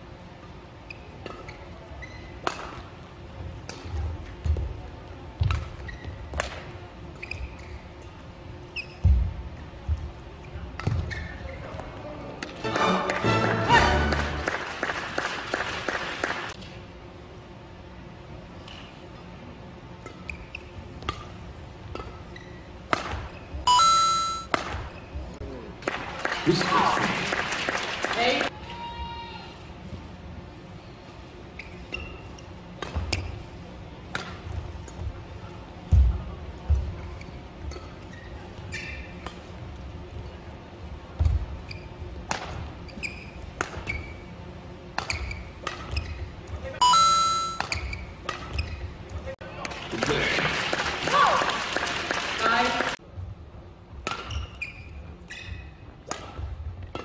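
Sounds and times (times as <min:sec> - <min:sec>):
shoe squeaking on court floor: 0:00.8 - 0:02.8, 0:05.5 - 0:06.4, 0:07.0 - 0:09.4, 0:10.4 - 0:11.9, 0:20.0 - 0:20.9, 0:22.0 - 0:25.3, 0:31.4 - 0:33.6, 0:37.0 - 0:39.6, 0:41.2 - 0:49.3, 0:54.1 - 0:55.9
crowd cheering and clapping: 0:12.7 - 0:16.6, 0:25.9 - 0:28.5, 0:49.9 - 0:53.0
racket striking shuttlecock: 0:22.9 - 0:23.2.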